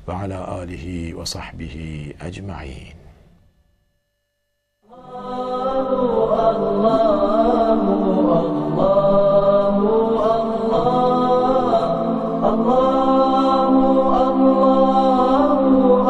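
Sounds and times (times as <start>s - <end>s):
layered voices chanting: 4.9s - 16.0s.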